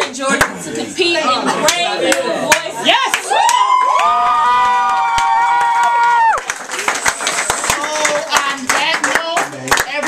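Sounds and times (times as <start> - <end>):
group clapping: 0.0 - 0.6, 1.6 - 10.0.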